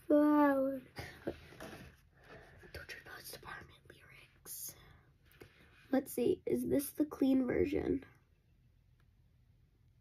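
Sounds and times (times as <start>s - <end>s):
girl whispering: 2.7s - 5.0s.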